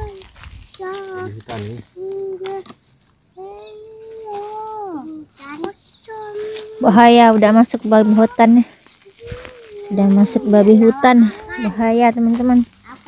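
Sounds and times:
young children calling and humming: 0:00.0 - 0:13.0.

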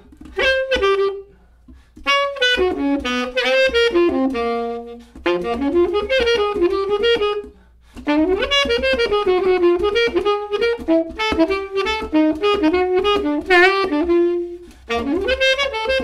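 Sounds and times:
tenor saxophone solo: 0:00.0 - 0:16.0.

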